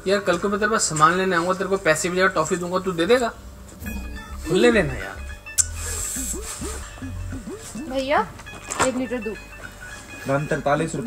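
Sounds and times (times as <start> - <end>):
music with low pulsing beat: 3.4 - 9.8.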